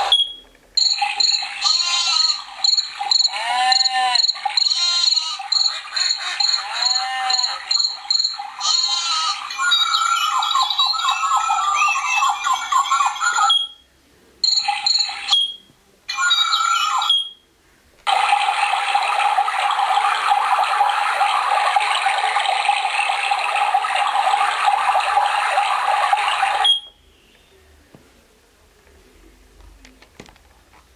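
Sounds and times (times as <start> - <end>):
recorded chirping calls: 0.0 - 13.8, 14.4 - 17.4.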